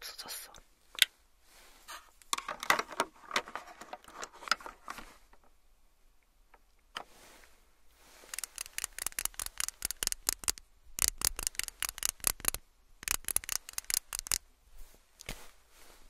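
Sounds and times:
makeup pencil scratchy clicks: 8.3 - 14.4.

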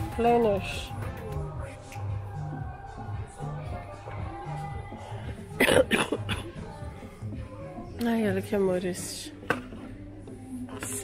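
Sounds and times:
person coughing: 5.5 - 6.6.

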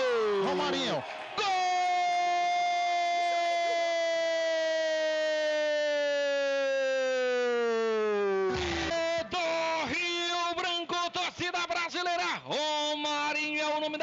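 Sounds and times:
rapid excited shouted words: 0.0 - 3.7
commentator shouting goal cry: 0.0 - 4.6, 8.6 - 14.0.

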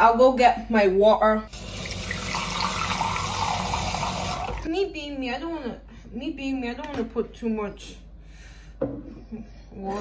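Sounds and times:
tap water pouring into bowl: 1.6 - 4.7.

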